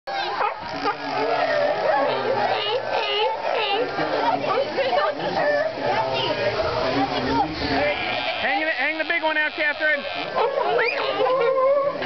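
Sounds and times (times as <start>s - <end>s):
onlookers' voices: 0.1s - 12.0s
sea lions barking: 0.1s - 12.0s.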